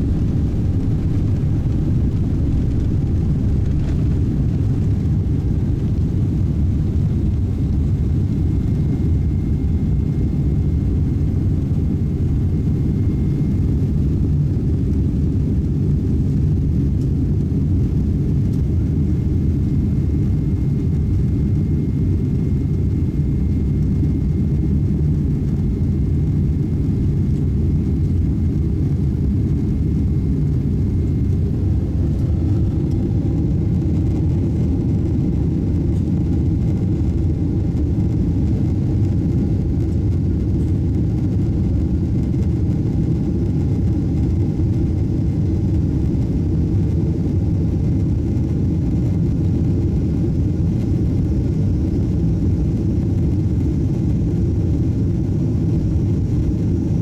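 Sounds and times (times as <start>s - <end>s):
faint high hum: 0.0s - 44.3s
jet engine roar in cabin: 0.0s - 57.0s.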